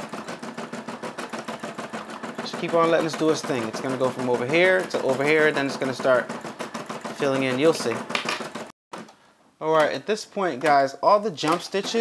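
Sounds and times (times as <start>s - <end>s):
embroidery machine stitching: 0.0s - 8.7s, 11.4s - 12.0s.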